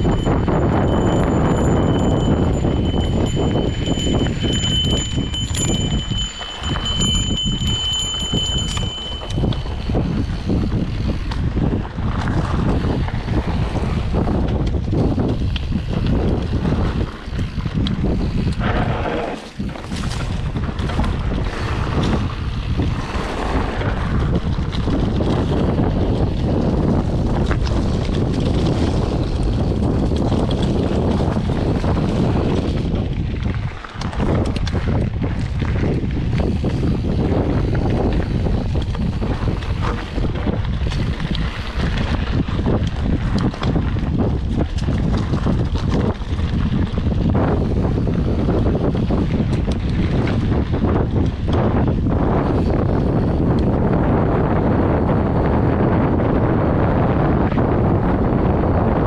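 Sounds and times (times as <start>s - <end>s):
bike rattling and knocking: 0.0s - 59.0s
tyres rumbling on dirt: 0.0s - 59.0s
wind buffeting microphone: 0.0s - 59.0s.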